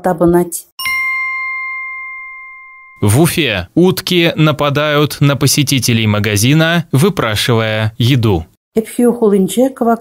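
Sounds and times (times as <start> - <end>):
bell-like chime ringing: 0.8 - 3.7.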